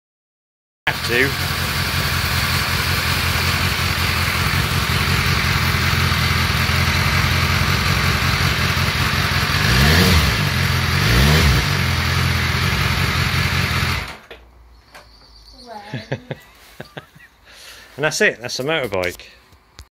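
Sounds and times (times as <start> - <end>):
motorcycle engine idling and revving: 0.9 - 14.3.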